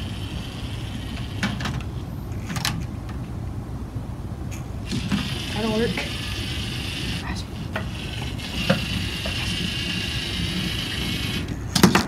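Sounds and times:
robot motors whining: 4.8 - 11.6.

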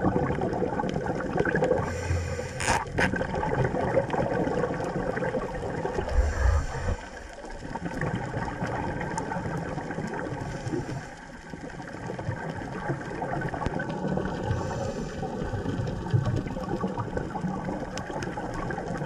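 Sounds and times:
underwater water rush: 0.0 - 19.0.

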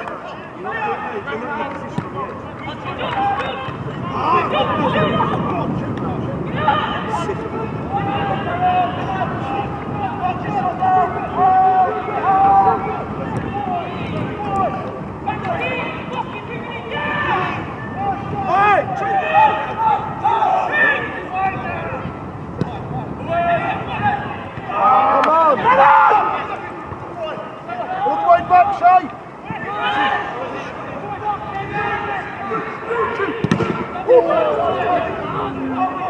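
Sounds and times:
players shouting: 0.0 - 36.0.

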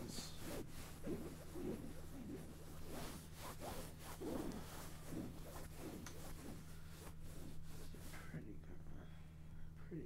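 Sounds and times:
fabric rubbing and rustling: 0.0 - 8.2
steady low hum: 0.0 - 10.0.

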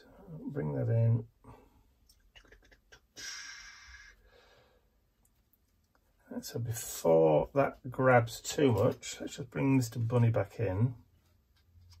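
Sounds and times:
soft paper rustle: 11.1 - 12.0.

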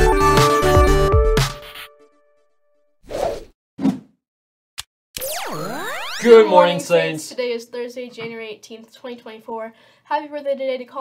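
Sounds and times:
electronic intro music: 5.2 - 6.5.

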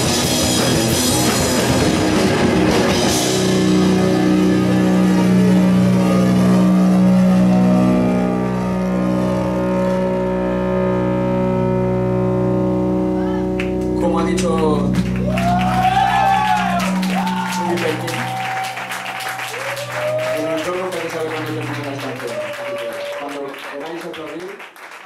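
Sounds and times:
metal band playing live: 0.0 - 22.2.

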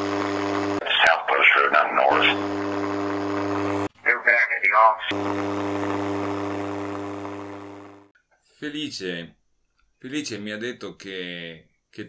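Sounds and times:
low hum: 0.0 - 3.9
radio hiss: 0.0 - 6.7.

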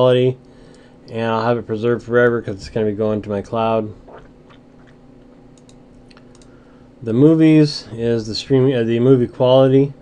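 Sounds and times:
steady low hum: 0.0 - 10.0
faint clicks: 5.6 - 6.6.

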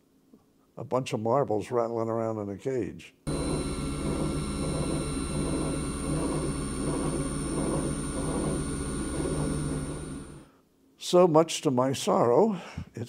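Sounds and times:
electric motor bearings rattling: 3.3 - 10.4
low hum: 3.3 - 10.5
thin high whine: 3.3 - 10.5.

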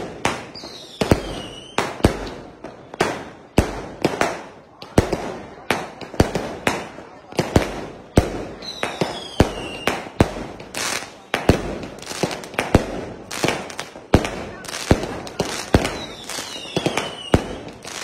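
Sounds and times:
fireworks bursting with bangs: 0.0 - 18.0.

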